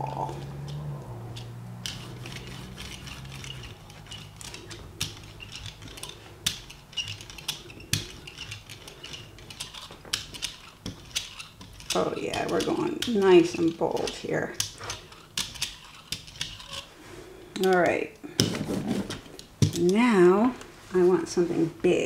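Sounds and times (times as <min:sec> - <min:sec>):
brayer rolling through wet paint: 0:00.0 - 0:17.4.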